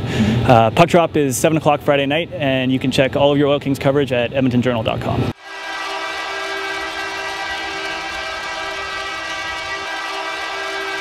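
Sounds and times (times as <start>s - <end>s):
multi-tone horn blast: 5.4s - 11.0s.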